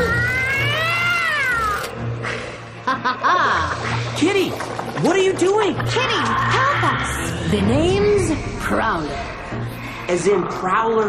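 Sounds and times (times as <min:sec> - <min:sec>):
cat-like yowl: 0:00.0 - 0:01.9
background music: 0:00.0 - 0:11.0.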